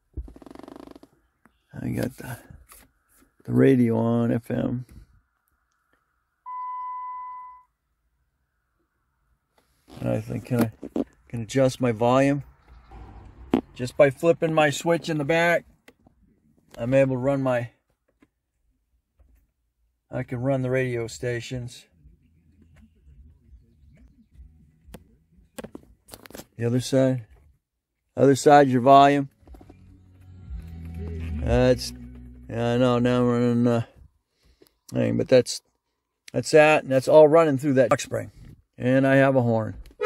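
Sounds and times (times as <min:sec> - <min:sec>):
faint car radio seeking stations: 0:00.0 - 0:40.0
electronic beep: 0:06.5 - 0:07.7.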